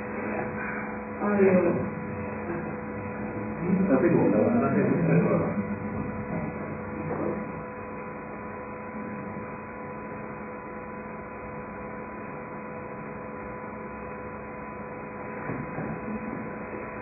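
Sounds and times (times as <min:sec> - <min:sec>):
electrical hum with tones: 0:00.0 - 0:17.0.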